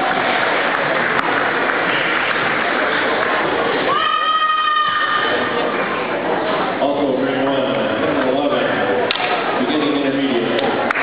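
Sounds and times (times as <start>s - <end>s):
people talking: 6.8s - 10.8s.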